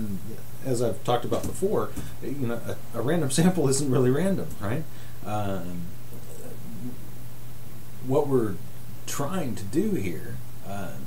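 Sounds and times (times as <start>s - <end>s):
low electrical hum with hiss: 0.0s - 11.0s.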